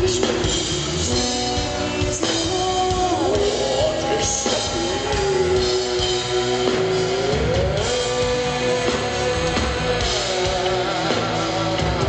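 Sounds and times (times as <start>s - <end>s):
symphonic metal band playing live: 0.0s - 12.0s.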